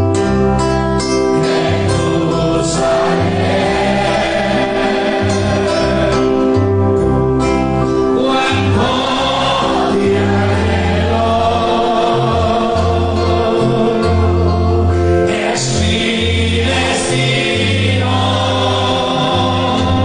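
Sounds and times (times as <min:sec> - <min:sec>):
instruments with low bass notes: 0:00.0 - 0:20.0
congregation singing: 0:01.1 - 0:20.0.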